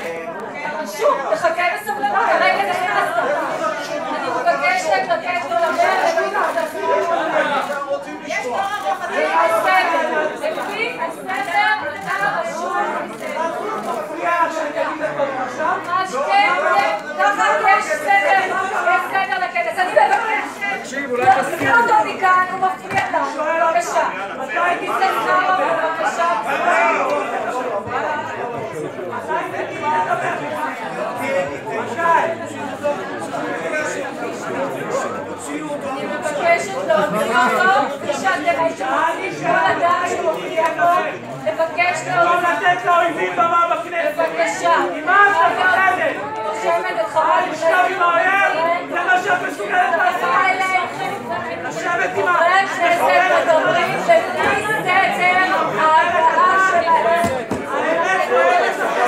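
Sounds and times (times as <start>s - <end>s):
overlapping voices of commotion: 0.0s - 59.0s.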